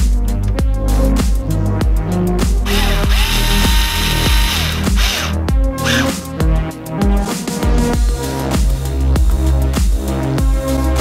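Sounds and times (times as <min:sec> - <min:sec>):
electronic music with heavy beat: 0:02.4 - 0:11.0
cordless screwdriver running: 0:02.7 - 0:06.2.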